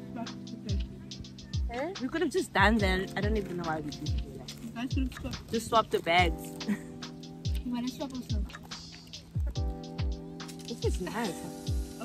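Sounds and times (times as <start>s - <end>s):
music with bass-drum beat: 0.0s - 12.0s.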